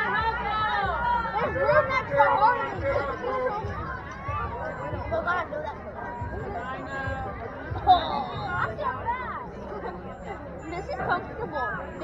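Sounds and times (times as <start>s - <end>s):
people chattering indistinctly: 0.0s - 12.0s.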